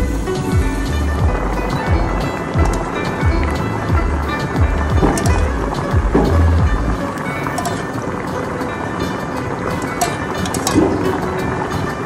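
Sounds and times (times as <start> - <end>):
music with deep steady beat: 0.0 - 12.0.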